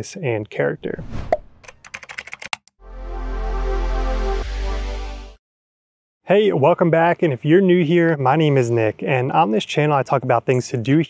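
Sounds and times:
sharp typing-like clicks: 1.6s - 2.7s.

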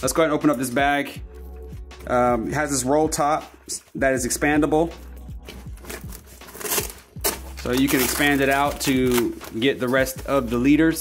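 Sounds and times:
quiet background music: 0.0s - 11.0s
backpack fabric rustling and crinkling: 5.4s - 11.0s.

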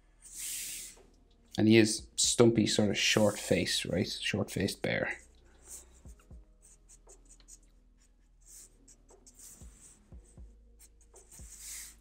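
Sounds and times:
marker scratching on paper: 0.2s - 1.0s, 5.6s - 12.0s.

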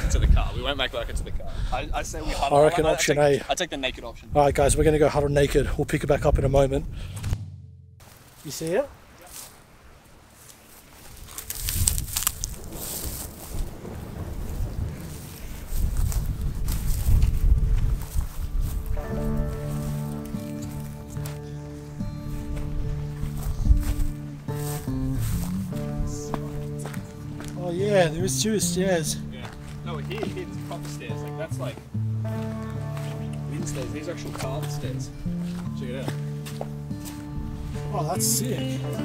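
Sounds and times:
gusty wind on microphone: 0.0s - 2.2s, 11.2s - 19.3s
bushes rustling: 8.0s - 39.0s
music of sustained chords: 18.1s - 39.0s.

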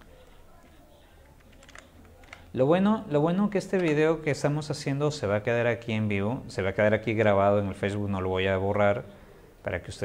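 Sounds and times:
computer keyboard typing: 1.2s - 2.5s.

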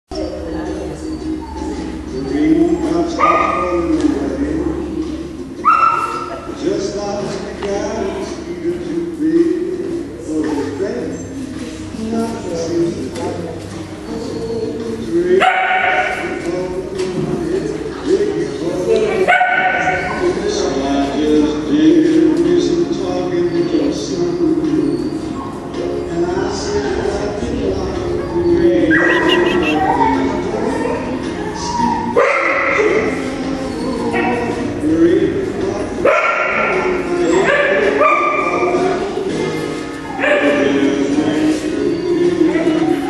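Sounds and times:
small dog yipping and whining: 0.5s - 3.5s, 28.9s - 30.3s.

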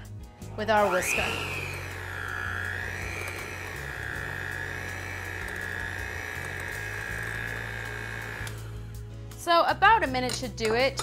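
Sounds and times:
background music: 0.0s - 11.0s
electric hand mixer whining: 0.4s - 9.1s.

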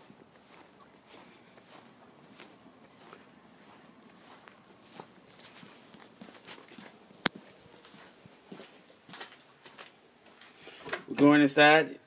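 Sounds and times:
faint footsteps on concrete: 0.0s - 10.6s.

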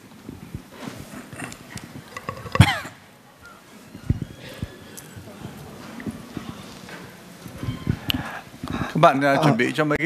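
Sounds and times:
microphone handling thumps: 3.9s - 8.9s.

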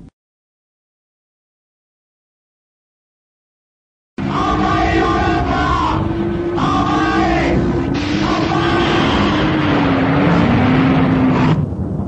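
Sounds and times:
roaring rumble with low drone: 4.2s - 12.0s.

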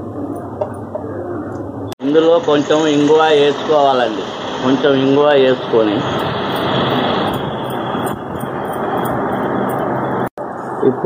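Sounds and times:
steady rushing noise: 2.0s - 11.0s.

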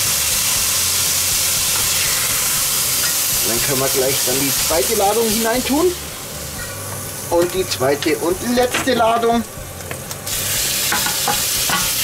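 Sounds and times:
chicken sizzling in hot oil: 0.0s - 12.0s
extractor hood fan hum: 0.0s - 12.0s.

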